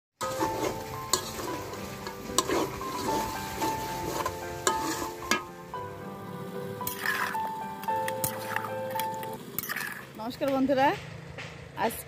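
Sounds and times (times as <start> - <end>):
curry sizzling in a pan: 0.2 - 10.1
soft background music: 0.2 - 12.0.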